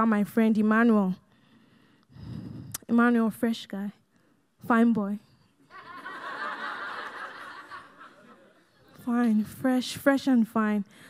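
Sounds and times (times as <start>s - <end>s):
audience laughing softly: 5.7s - 9.0s.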